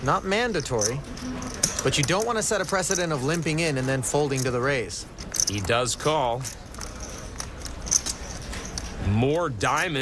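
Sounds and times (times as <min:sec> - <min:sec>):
poker chips and cards clicking: 0:00.0 - 0:09.0.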